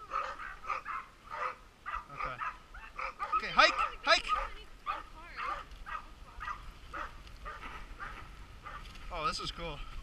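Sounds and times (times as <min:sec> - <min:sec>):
sled dogs barking and yipping: 0:00.0 - 0:09.2.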